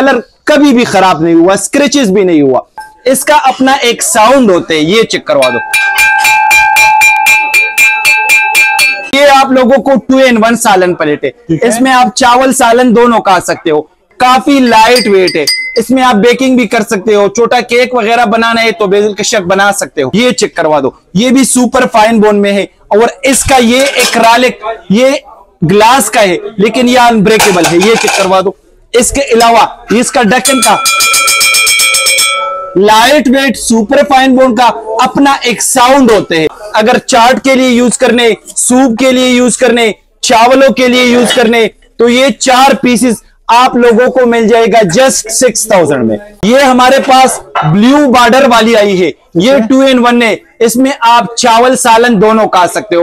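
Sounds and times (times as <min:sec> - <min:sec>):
bowl ringing tones: 0:02.8 - 0:03.2, 0:05.4 - 0:09.2, 0:30.4 - 0:32.9.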